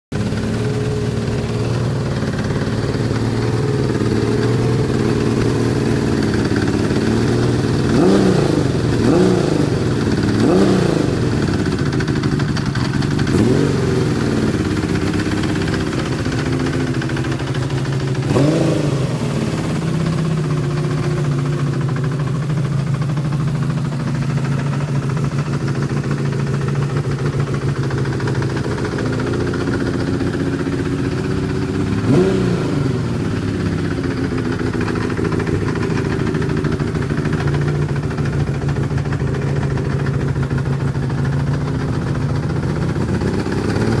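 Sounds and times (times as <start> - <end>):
motorcycle engine idling and revving: 0.1 - 44.0.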